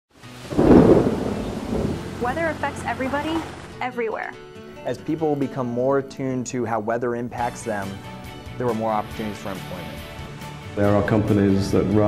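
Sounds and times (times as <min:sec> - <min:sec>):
low rumble of thunder: 0:00.4 - 0:03.7.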